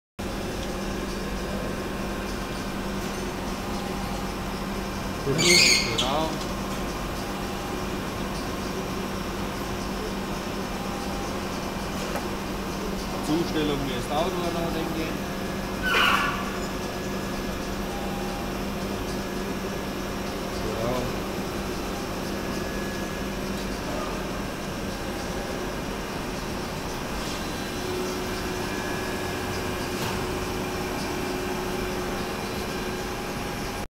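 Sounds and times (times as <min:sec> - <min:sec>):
grinder machine hum: 0:06.1 - 0:33.8.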